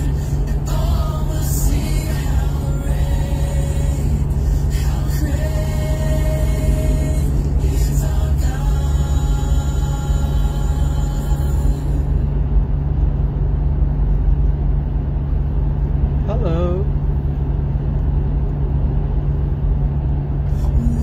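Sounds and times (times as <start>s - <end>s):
car cabin rumble: 0.0s - 21.0s.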